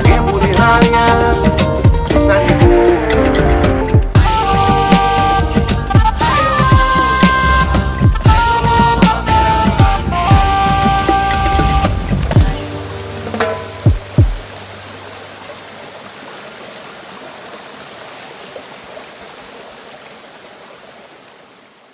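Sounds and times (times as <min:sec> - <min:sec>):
held chord and bass: 0:00.0 - 0:14.8
steady rushing hiss: 0:11.1 - 0:19.7.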